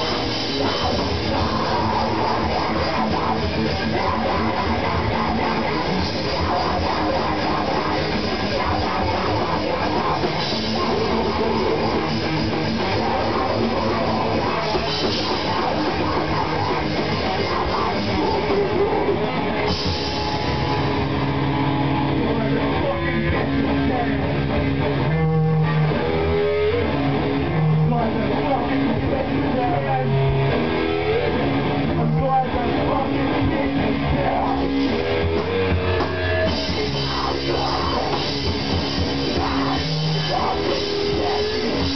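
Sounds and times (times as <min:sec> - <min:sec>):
bass guitar: 0:00.0 - 0:41.9
drum kit: 0:00.0 - 0:41.9
electric guitar: 0:00.0 - 0:41.9.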